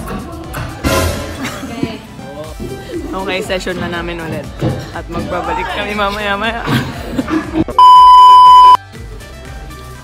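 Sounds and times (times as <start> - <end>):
censor bleep tone: 7.8 - 8.8.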